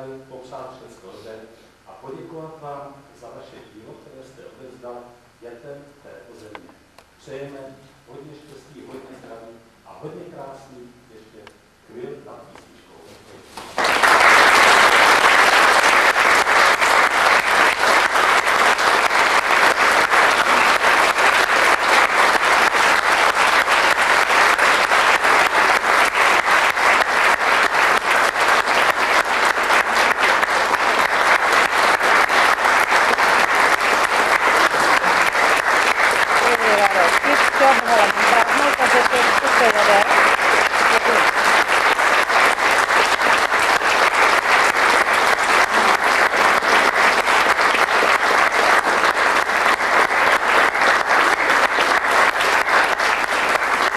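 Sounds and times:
audience applauding: 0:13.6 - 0:53.9.

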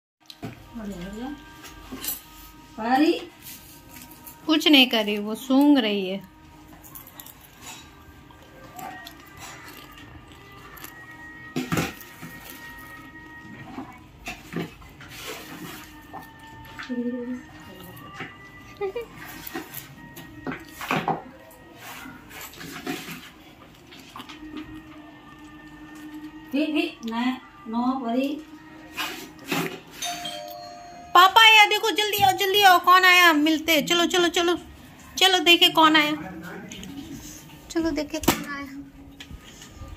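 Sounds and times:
electronic doorbell chime: 0:30.0 - 0:31.7.

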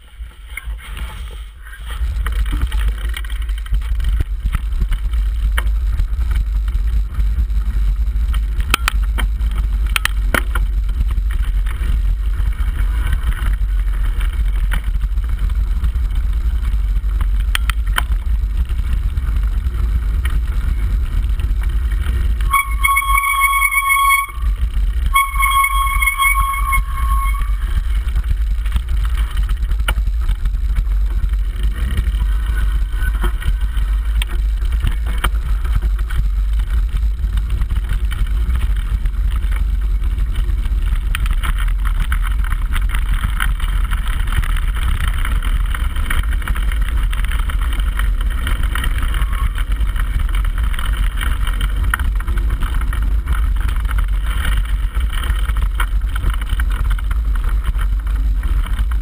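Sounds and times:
high-pitched squeal: 0:22.5 - 0:28.0.

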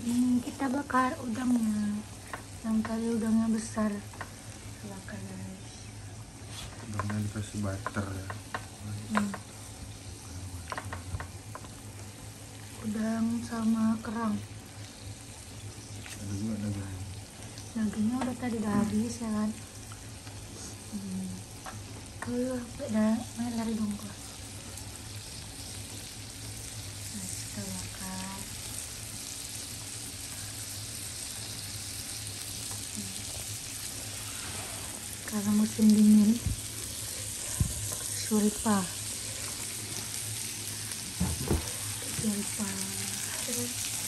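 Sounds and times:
seafood sizzling in butter: 0:00.0 - 0:44.0.

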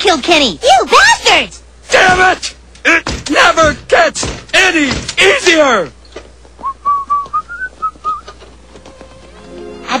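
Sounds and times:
person whistling a tune: 0:06.6 - 0:08.4.

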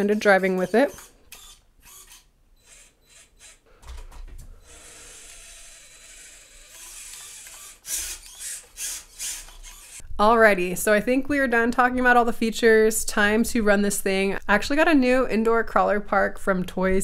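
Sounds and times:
small electric motor and gears whirring: 0:00.4 - 0:03.7, 0:04.6 - 0:10.0.

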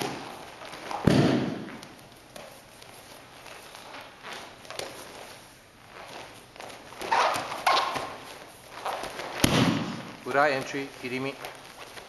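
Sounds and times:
bare feet sliding on mat: 0:00.0 - 0:12.0
sharp thuds: 0:01.0 - 0:01.8, 0:09.4 - 0:10.2.

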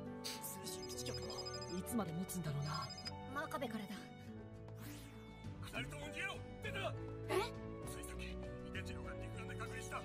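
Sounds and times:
background music: 0:00.0 - 0:10.0
electronic phone trill: 0:00.9 - 0:02.0, 0:02.6 - 0:03.2.

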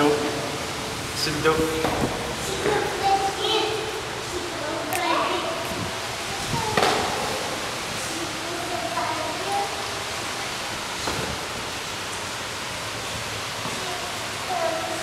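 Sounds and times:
steady rushing noise: 0:00.0 - 0:15.0.

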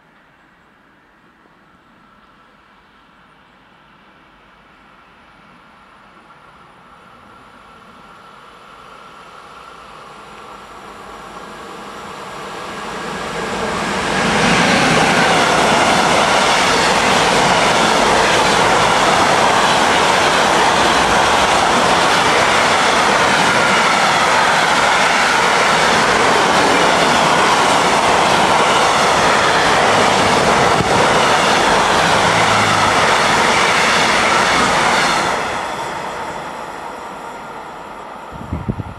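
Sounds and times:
freight train passing: 0:00.0 - 0:38.9.

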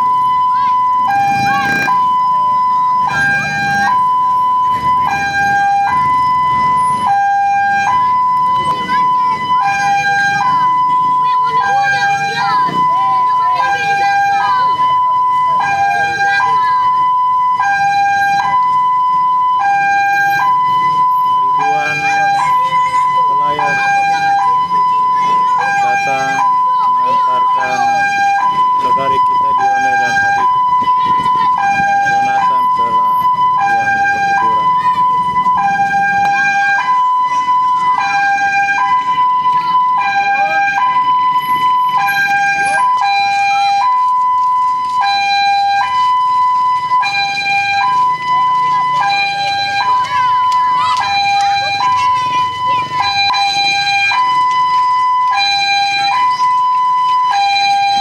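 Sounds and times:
crowd voices: 0:00.0 - 0:58.0
two-tone siren: 0:00.0 - 0:58.0.

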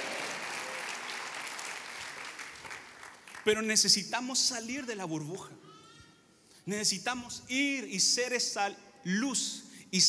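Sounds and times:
congregation applauding: 0:00.0 - 0:03.7.

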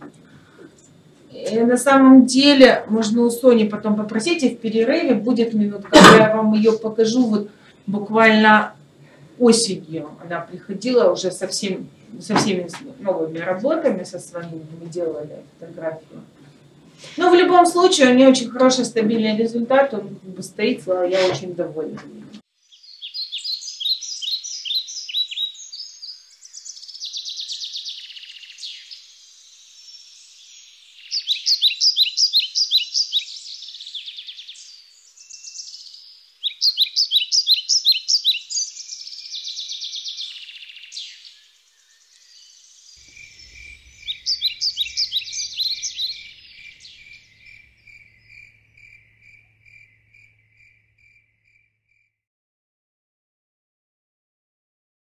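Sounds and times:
high-pitched chirping trills: 0:22.7 - 0:50.7
lower evenly spaced chirps: 0:41.8 - 0:51.6.

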